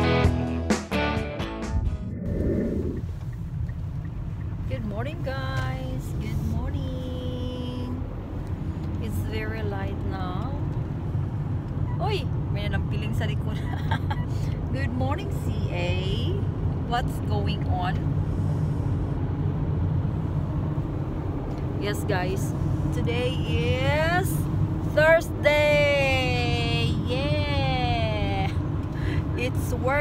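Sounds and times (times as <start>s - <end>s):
car interior rumble: 1.8s - 30.0s
voices: 21.8s - 28.6s.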